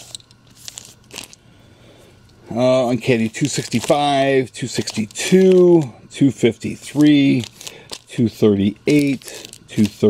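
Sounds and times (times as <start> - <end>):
plastic bags crinkling: 0.0 - 1.4, 2.9 - 5.9, 6.7 - 10.0.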